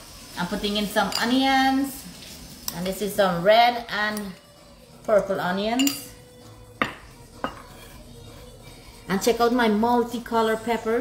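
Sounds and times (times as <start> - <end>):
kitchen background noise: 0.0 - 11.0
utensil clinking against dish: 5.8 - 6.2.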